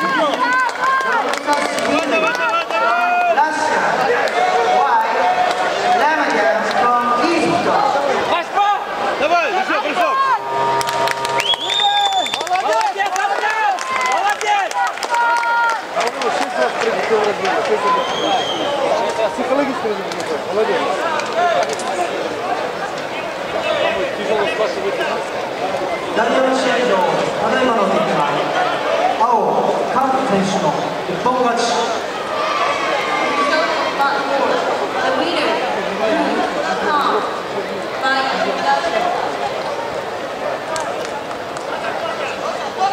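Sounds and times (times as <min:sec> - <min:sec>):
overlapping voices chattering: 0:00.0 - 0:42.9
people calling out: 0:08.2 - 0:15.9.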